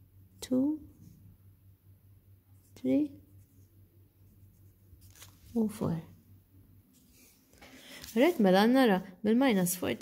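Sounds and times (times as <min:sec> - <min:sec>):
pencil scratching on paper: 0:02.6 - 0:05.2.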